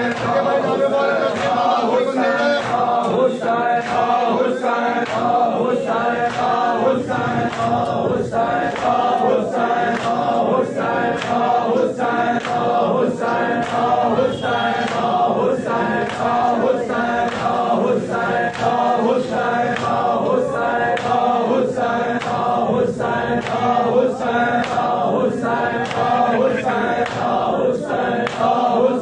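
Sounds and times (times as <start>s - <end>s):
men chanting a lament: 0.0s - 29.0s.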